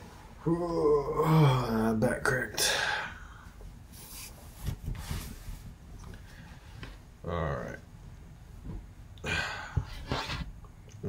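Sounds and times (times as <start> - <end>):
fabric rustling: 3.9 - 7.0.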